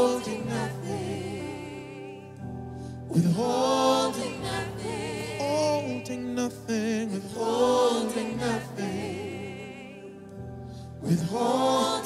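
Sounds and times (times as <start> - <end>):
church choir singing: 0.0 - 12.0
low musical backing: 0.0 - 12.0.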